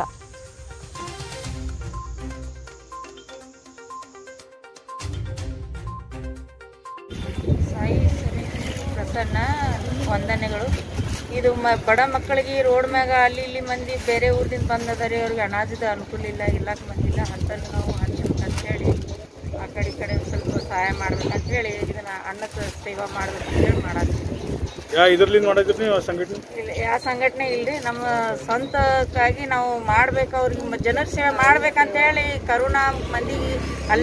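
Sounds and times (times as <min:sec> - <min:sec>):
wind buffeting microphone: 0:07.1 - 0:34.0
woman's voice: 0:07.5 - 0:24.2, 0:26.4 - 0:34.0.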